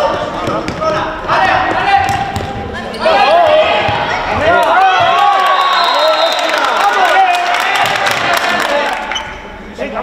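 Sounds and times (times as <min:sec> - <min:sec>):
ball thudding on court floor: 0:02.0 - 0:02.6
players and spectators shouting: 0:02.9 - 0:09.2.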